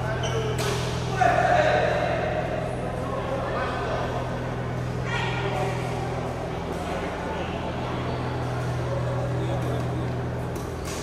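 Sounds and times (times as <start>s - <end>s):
chatter in a large hall: 0.0s - 11.0s.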